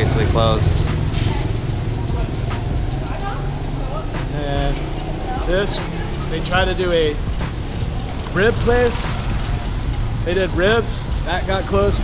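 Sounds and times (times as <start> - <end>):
faint voices: 0.0 - 12.0
traffic rumble: 0.0 - 12.0.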